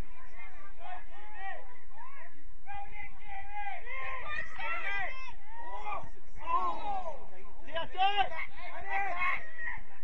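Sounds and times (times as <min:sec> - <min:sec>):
people shouting: 0:00.0 - 0:10.0.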